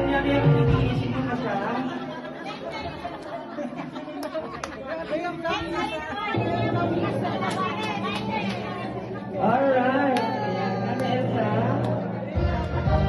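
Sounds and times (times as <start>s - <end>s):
music: 0.0s - 2.0s, 6.3s - 13.0s
people talking and exclaiming: 0.0s - 13.0s.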